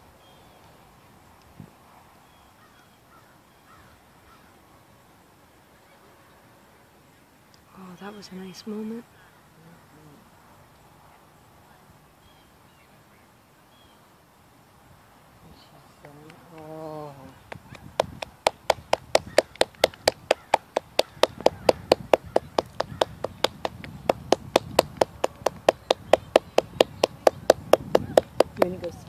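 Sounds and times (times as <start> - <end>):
person clapping: 16.0 - 16.7, 17.5 - 29.0.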